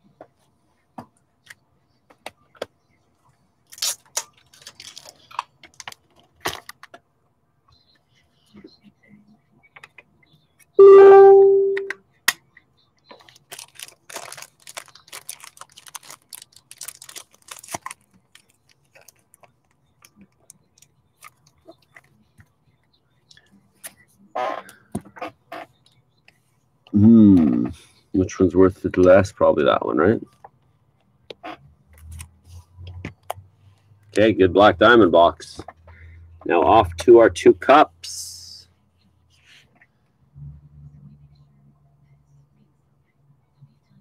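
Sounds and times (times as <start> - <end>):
loud steady tone: 10.8 - 11.9.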